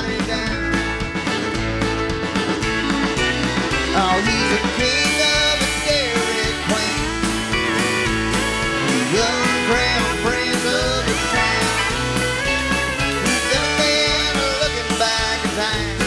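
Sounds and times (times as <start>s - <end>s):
bass: 0.0s - 16.0s
electric guitar: 0.0s - 16.0s
fiddle: 0.0s - 16.0s
steady drum beat: 0.0s - 16.0s.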